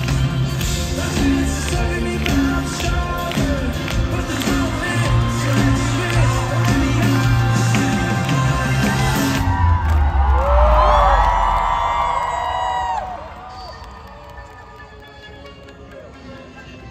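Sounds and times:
audience cheering and whooping: 8.4s - 14.9s.

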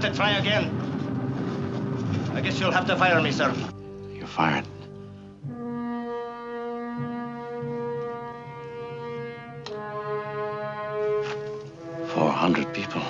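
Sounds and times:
orchestral brass chords: 0.0s - 13.0s.

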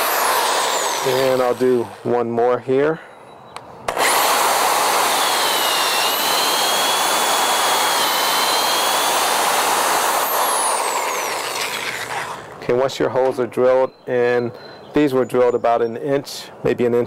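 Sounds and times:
electric drill boring into wood: 0.0s - 2.1s, 3.9s - 12.6s.

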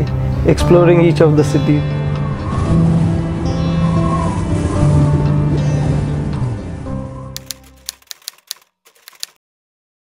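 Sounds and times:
background music: 0.0s - 9.3s
typewriter key clicks: 7.4s - 9.4s.

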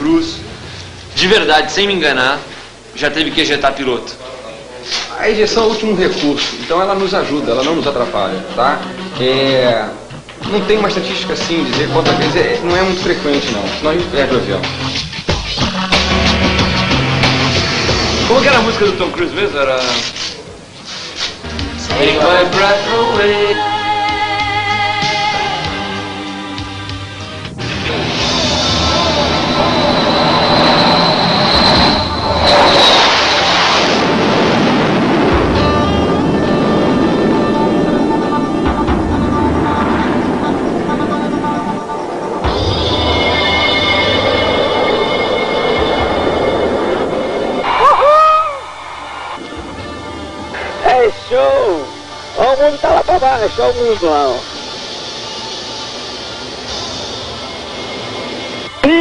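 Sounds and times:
background music: 5.3s - 19.6s, 21.4s - 33.0s, 34.9s - 59.0s
jet engines roaring: 10.2s - 20.7s, 27.5s - 58.8s
rushing airflow: 27.5s - 52.3s
jet engine in cockpit: 28.1s - 47.8s.

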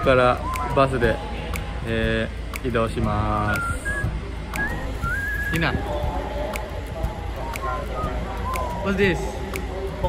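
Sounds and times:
low murmur of room: 0.0s - 10.0s
person whistling: 3.4s - 5.9s, 7.8s - 9.2s.

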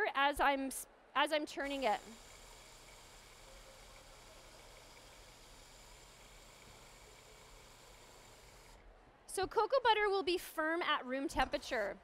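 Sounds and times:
food processor whirring: 1.6s - 8.8s.

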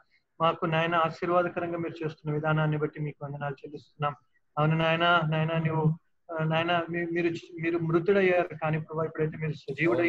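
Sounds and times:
man chanting speech: 0.4s - 10.0s.

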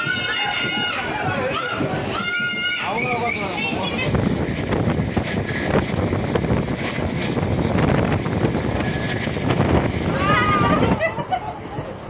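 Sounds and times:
train coach rumbling and rattling: 0.0s - 12.0s
wind buffeting microphone: 0.0s - 12.0s.

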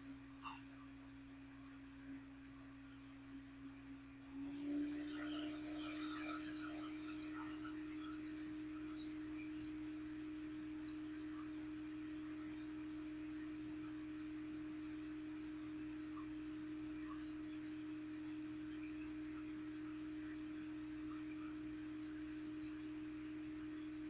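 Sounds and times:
steady single-pitched hum: 0.0s - 24.0s.

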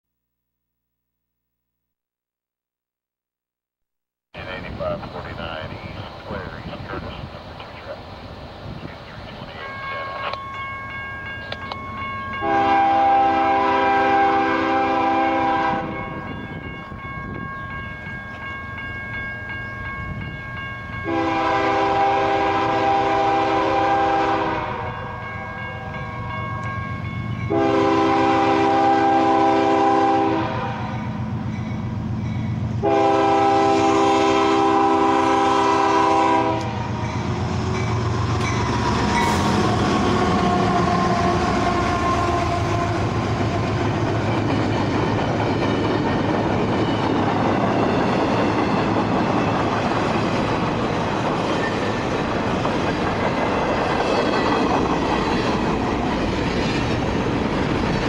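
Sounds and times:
train air horn blasts: 12.4s - 16.0s, 21.0s - 26.0s, 27.5s - 31.2s, 32.8s - 37.3s, 39.2s - 43.1s.

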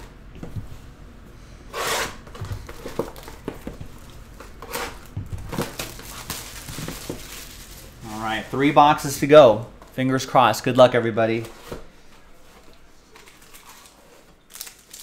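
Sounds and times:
plastic shrink wrap tearing: 4.0s - 8.6s, 13.2s - 15.0s.

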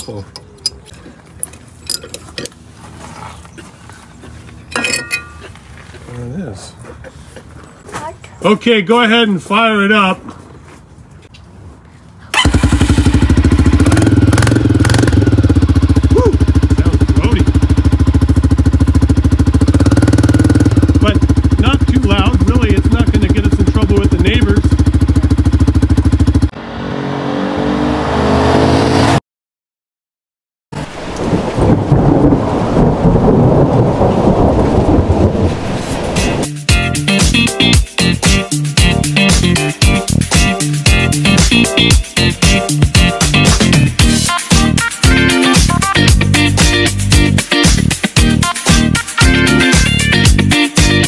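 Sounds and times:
quad engine running loud: 12.4s - 26.7s
rushing noise: 30.8s - 36.6s
music: 36.2s - 51.0s.

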